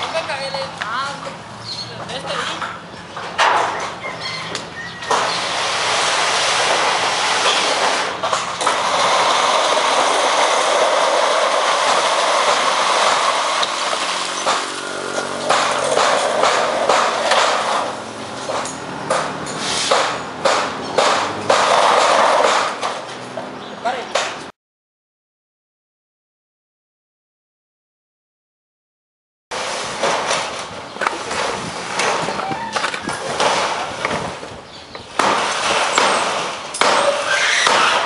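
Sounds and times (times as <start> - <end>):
metal sheets scraping on metal: 5.1 - 18.8, 19.4 - 20.3, 21.0 - 23.2, 35.3 - 38.0
metal sheets clattering: 5.2 - 23.2.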